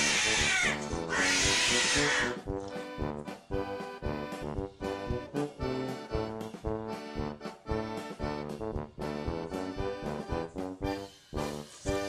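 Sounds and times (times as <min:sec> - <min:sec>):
cat screeching: 0:00.0 - 0:02.4
background music with steady beat: 0:00.1 - 0:12.0.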